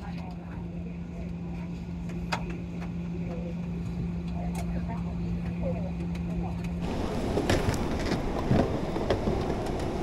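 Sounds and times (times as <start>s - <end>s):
faint passenger voices: 0.0s - 6.9s
aircraft cabin hum and rumble: 0.0s - 10.0s
busy cabin noise: 0.0s - 10.0s.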